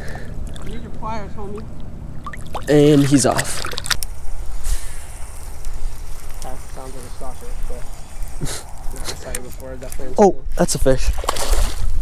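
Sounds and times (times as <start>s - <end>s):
wind rumbling on microphone: 4.1s - 12.0s.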